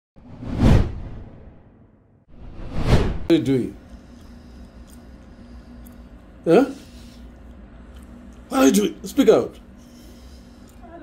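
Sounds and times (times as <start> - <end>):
whoosh with deep rumble: 0.2 - 3.3.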